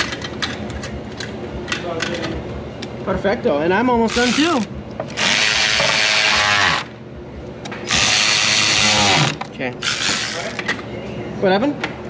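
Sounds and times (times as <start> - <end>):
cordless electric ratchet: 4.1 - 6.9, 7.9 - 10.6.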